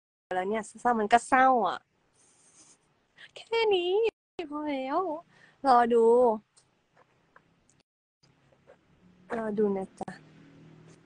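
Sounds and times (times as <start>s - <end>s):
woman speaking: 0.3s - 1.8s, 3.2s - 6.4s, 9.3s - 10.2s.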